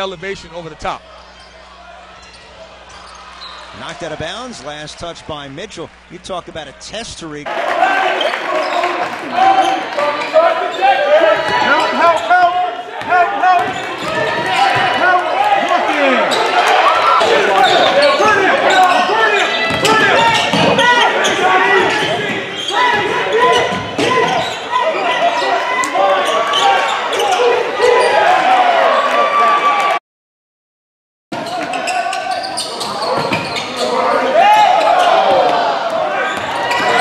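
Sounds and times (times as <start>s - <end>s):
sneakers squeaking on wooden floor: 1.3s - 3.8s, 17.6s - 25.6s, 31.4s - 34.1s, 36.1s - 37.0s.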